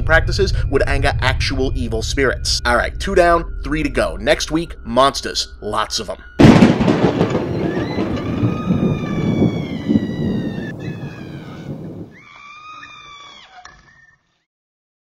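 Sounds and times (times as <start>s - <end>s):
thunder rumble: 0.0s - 4.6s, 6.4s - 12.2s
high falling drawn-out tone: 0.0s - 5.8s, 6.4s - 13.5s.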